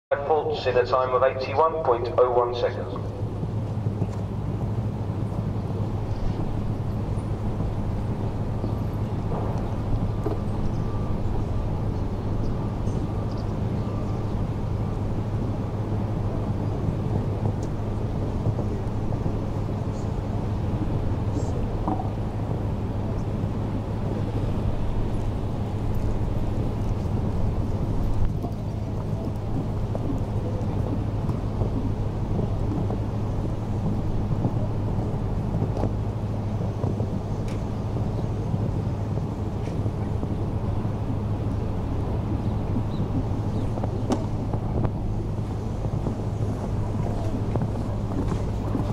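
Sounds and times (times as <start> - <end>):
constant low hum: 0.1 - 48.9
wind on microphone: 3.0 - 48.9.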